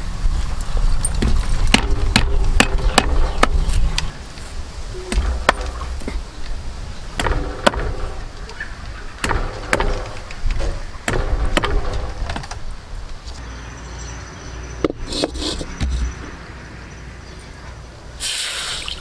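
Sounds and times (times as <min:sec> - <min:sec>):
cleaver chopping on wooden block: 0:09.2 - 0:10.2.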